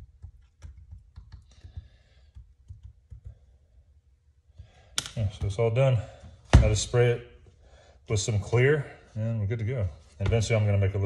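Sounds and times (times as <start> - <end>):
paintbrush tapping: 0.0 - 3.5.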